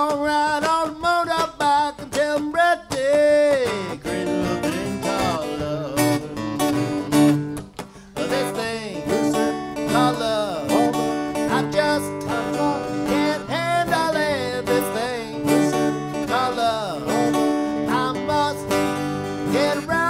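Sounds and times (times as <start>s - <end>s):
acoustic guitars strumming: 0.0s - 20.0s
sliding guitar melody: 0.0s - 20.0s.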